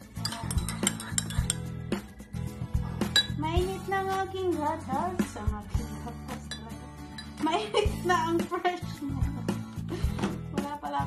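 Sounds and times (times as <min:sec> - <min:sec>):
metal spoon clinking ceramic: 0:00.0 - 0:01.8, 0:03.0 - 0:03.4, 0:06.4 - 0:07.6
background music: 0:00.0 - 0:11.0.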